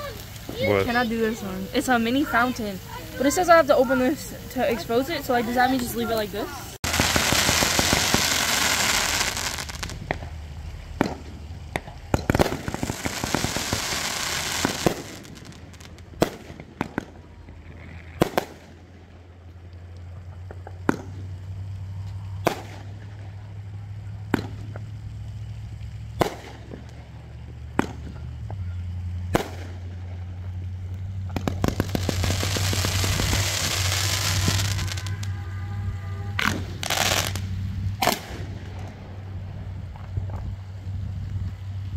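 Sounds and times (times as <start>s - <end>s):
fireworks bangs: 0.0s - 41.9s
fireworks hissing: 0.0s - 41.9s.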